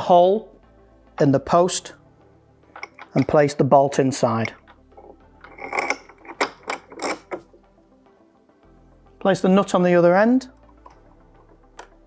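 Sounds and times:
metallic clicks of bolt: 2.7s - 3.4s, 11.8s - 12.0s.

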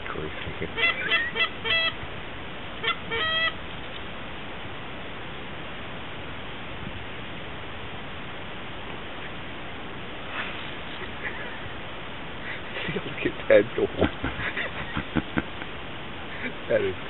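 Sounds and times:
geese honking: 0.0s - 2.1s, 2.8s - 3.6s
faint steady noise: 0.0s - 17.0s.

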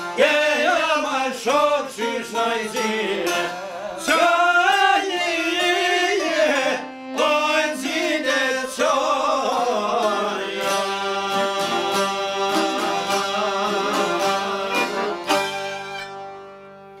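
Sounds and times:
person singing: 0.0s - 15.9s
folk ensemble playing: 0.0s - 17.0s.

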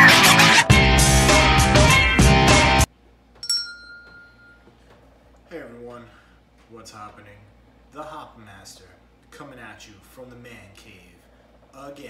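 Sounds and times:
hand bell ding: 3.4s - 4.7s.

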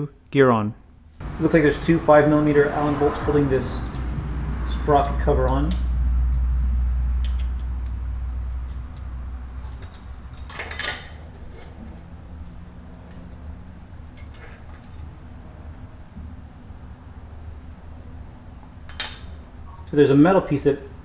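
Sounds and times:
low rumble: 1.2s - 14.0s.

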